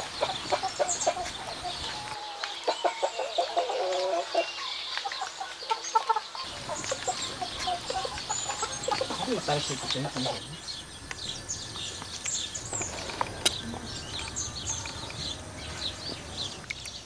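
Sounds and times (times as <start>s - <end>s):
chickens clucking: 0.0s - 17.0s.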